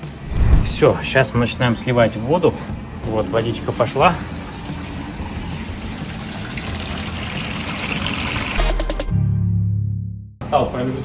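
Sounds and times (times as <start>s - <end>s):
washing machine draining water: 3.6s - 8.6s.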